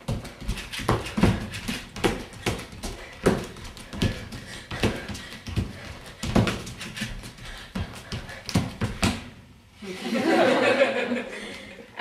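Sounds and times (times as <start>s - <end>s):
feet thumping on wooden floor: 0.0s - 9.4s.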